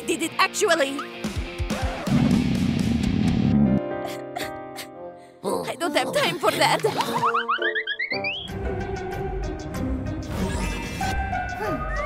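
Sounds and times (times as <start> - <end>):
background music with a beat: 1.0 - 3.5.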